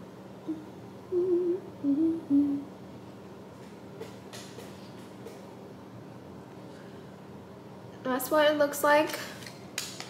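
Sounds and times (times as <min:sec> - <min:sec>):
woman humming: 0:00.4 - 0:02.7.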